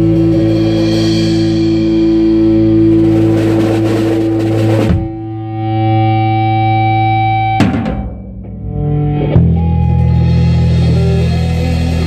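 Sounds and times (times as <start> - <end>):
drums and cymbals: 0.0 - 5.4, 7.6 - 8.6, 9.4 - 12.0
electric guitar sustained notes: 0.0 - 12.0.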